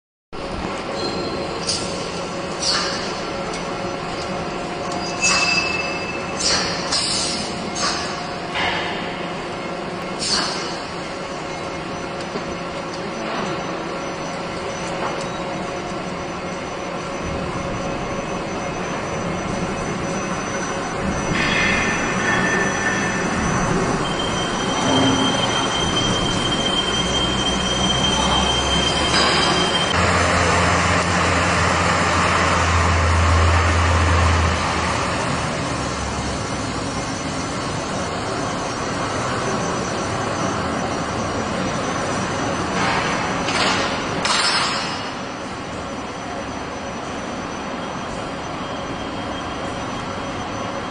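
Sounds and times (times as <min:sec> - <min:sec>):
machine mechanical whir: 0:00.4 - 0:50.9
thin high whine: 0:00.6 - 0:50.9.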